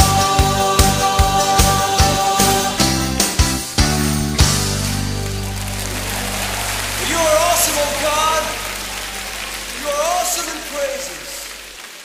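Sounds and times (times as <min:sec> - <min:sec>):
band chord ringing out: 0:03.9 - 0:11.8
congregation applause: 0:04.6 - 0:12.0
crowd voices with wavering pitches: 0:05.3 - 0:11.8.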